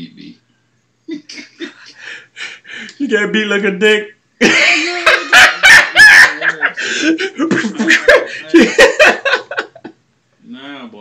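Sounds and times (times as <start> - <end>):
man cackling laughter: 4.4 - 9.9.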